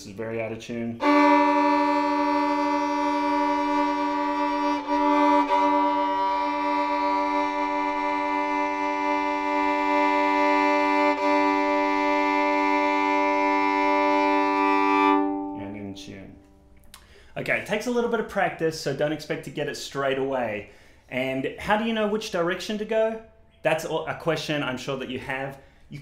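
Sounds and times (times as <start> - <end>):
violin double stop bowed: 1.0 - 16.5.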